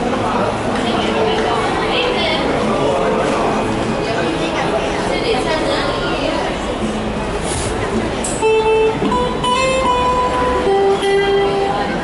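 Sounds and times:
street background noise: 0:00.0 - 0:12.0
electric guitar single notes: 0:08.4 - 0:12.0.

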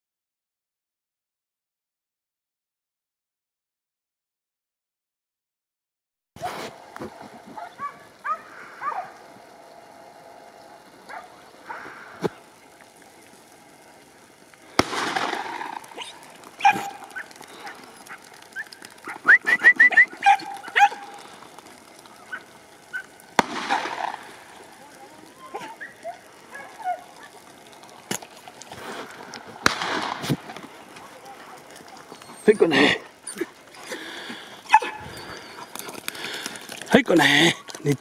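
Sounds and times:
hounds yelping and barking: 0:07.5 - 0:10.2, 0:10.8 - 0:13.5, 0:14.8 - 0:36.9.

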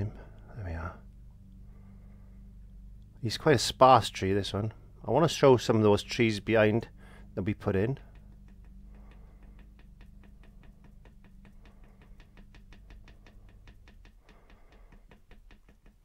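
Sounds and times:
low hum: 0:00.0 - 0:16.0
paintbrush tapping on canvas: 0:06.0 - 0:16.0.

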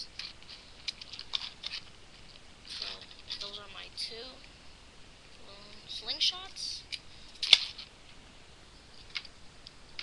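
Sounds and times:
crackling handling noises: 0:00.0 - 0:03.7, 0:06.9 - 0:08.2, 0:08.8 - 0:10.0
person speaking: 0:02.6 - 0:04.5, 0:05.4 - 0:07.0.

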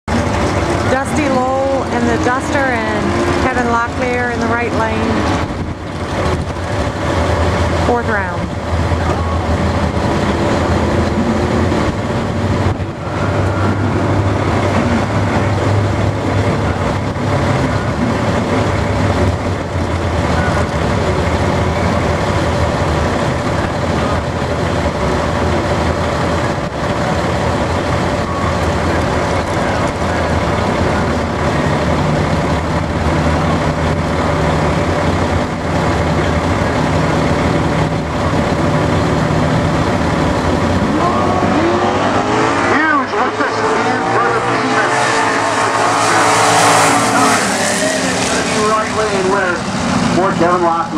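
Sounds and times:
race car engines idling loudly: 0:00.0 - 0:50.9.

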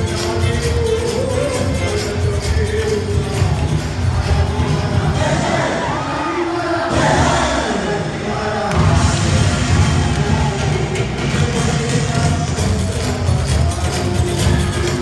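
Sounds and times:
live dance music on a pa system: 0:00.0 - 0:15.0
crowd cheering and whooping: 0:08.7 - 0:11.3
drum beat: 0:08.7 - 0:15.0.

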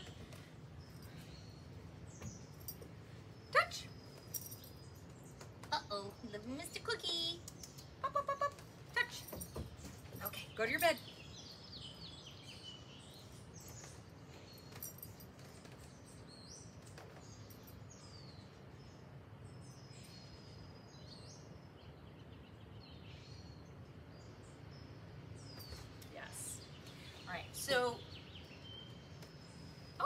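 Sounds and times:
low outdoor background hum: 0:00.0 - 0:30.0.

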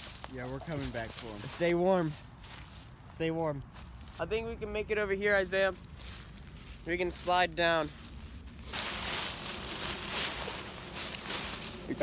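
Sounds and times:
dry leaves crunching and rustling: 0:00.0 - 0:04.2, 0:05.7 - 0:12.0.

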